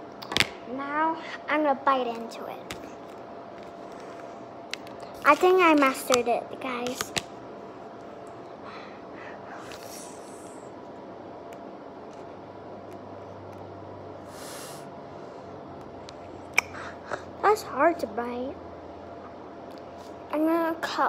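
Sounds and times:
low room noise: 0.0s - 21.0s
airy breath out: 14.3s - 14.9s
breathing through the nose: 14.3s - 14.9s.

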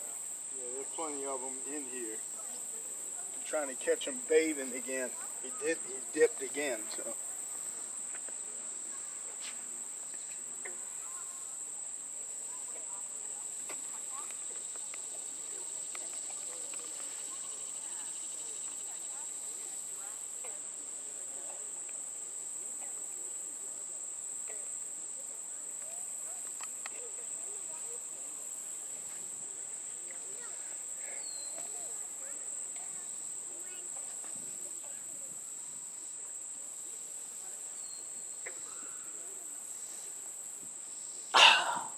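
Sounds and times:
faint scattered ticks: 0.0s - 41.9s
insects chorus: 0.0s - 41.9s.

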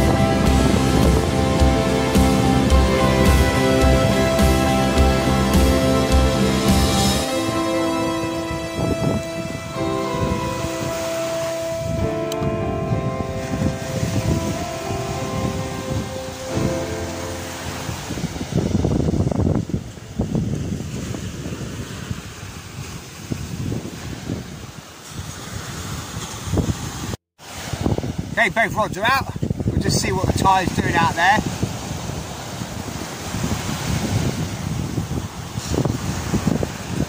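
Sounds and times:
small waves washing onto sand: 0.0s - 12.4s, 13.2s - 37.0s
background music: 0.0s - 18.6s
wind on microphone: 0.0s - 37.0s.

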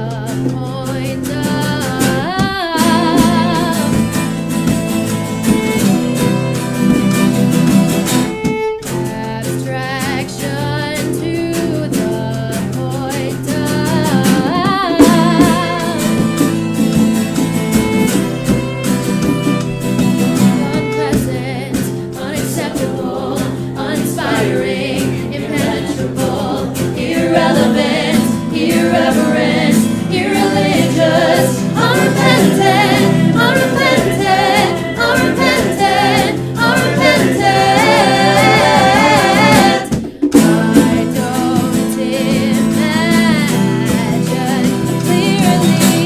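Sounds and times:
several voices singing: 1.1s - 4.8s, 13.4s - 16.6s, 20.5s - 46.0s
band accompaniment: 1.6s - 10.5s, 11.2s - 46.0s.

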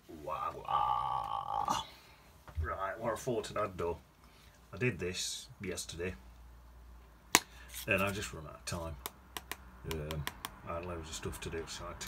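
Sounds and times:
person holding long vowel: 0.6s - 2.0s.

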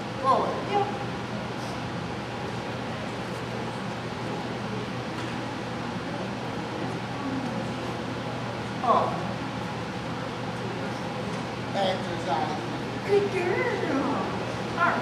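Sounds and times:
murmur of distant voices: 0.0s - 15.0s
steady low hum: 0.0s - 15.0s.

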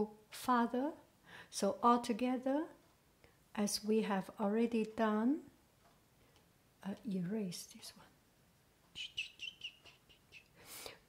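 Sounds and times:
small bird chirping: 8.9s - 10.6s.

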